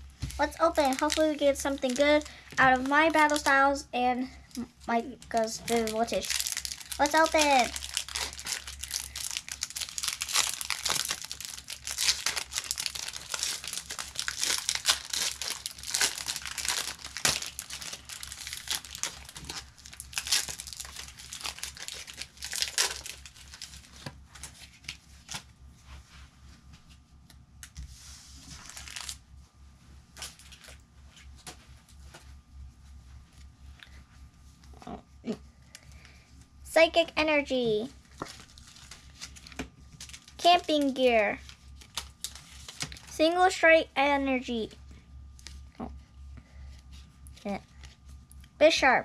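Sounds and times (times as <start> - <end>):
foil wrapper tearing and crinkling: 0.4 - 3.6, 5.3 - 25.5, 28.5 - 29.2, 30.2 - 30.8, 38.0 - 43.2.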